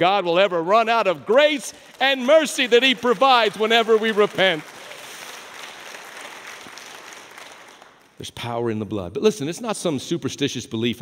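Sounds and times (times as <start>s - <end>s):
congregation applauding: 0.6s - 8.2s.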